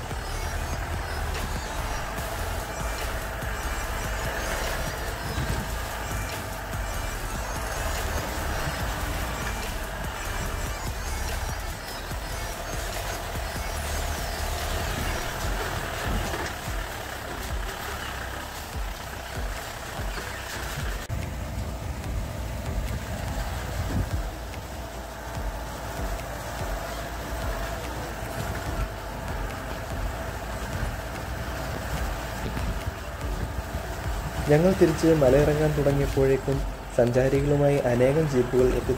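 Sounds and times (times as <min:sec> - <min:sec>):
off-road vehicle engine rumbling: 0:00.0 - 0:38.9.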